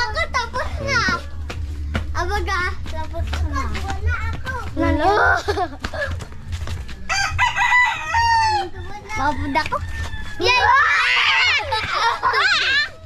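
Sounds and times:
rooster crowing: 7.1 - 11.4.

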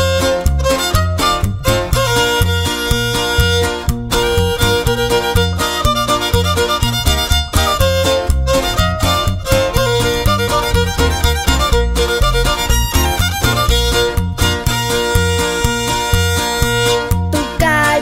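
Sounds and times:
guitar: 0.0 - 18.0
steady bass beat: 0.0 - 18.0
violin melody: 0.0 - 18.0.

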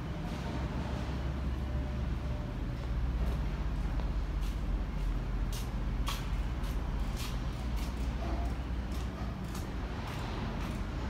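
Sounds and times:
steady low rumble: 0.0 - 11.0.

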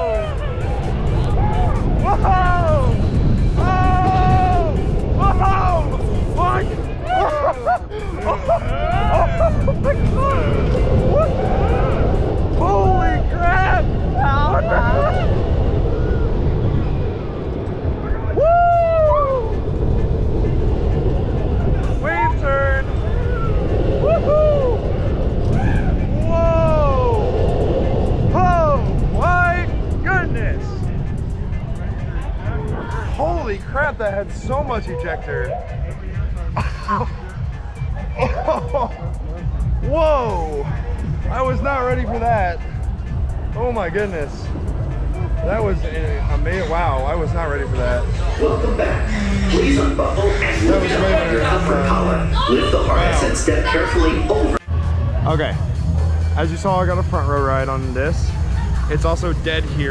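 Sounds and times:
riders screaming and whooping: 0.0 - 33.4
roller coaster train rumble: 0.0 - 59.9
wind rush: 0.0 - 59.9.

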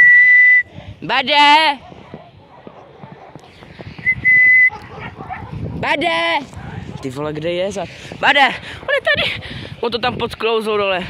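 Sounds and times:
person whistling high note: 0.0 - 0.7, 4.0 - 4.7
footsteps on snow: 1.4 - 11.0.

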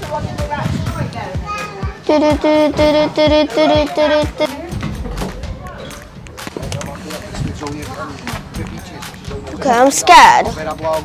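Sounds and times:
background music with beat: 0.0 - 11.0
children chattering: 1.2 - 7.7.

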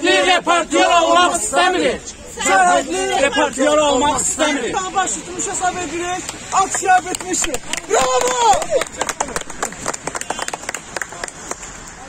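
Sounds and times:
group clapping: 6.2 - 11.9.

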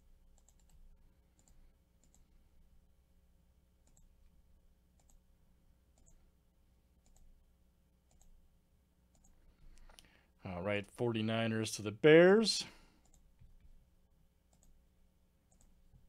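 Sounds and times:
faint computer mouse clicks: 0.4 - 0.8, 5.0 - 5.2, 5.9 - 6.2, 7.0 - 7.3, 8.1 - 8.4, 9.1 - 10.1, 14.5 - 14.8, 15.5 - 15.8.

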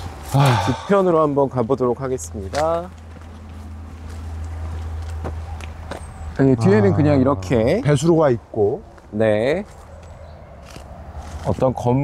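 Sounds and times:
footsteps on dirt path: 2.4 - 6.4, 8.8 - 11.8.

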